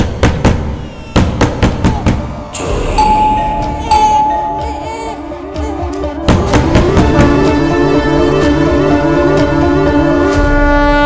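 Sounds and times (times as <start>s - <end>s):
tense film score music: 0.0s - 11.0s.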